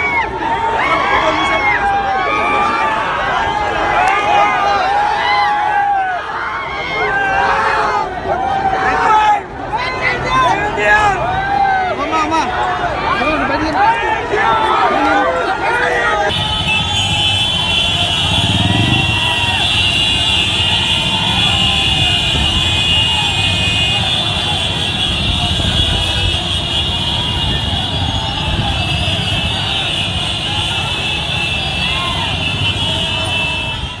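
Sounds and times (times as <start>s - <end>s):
many horns honking: 13.9s - 34.0s
motorcycle and car engines: 16.3s - 34.0s.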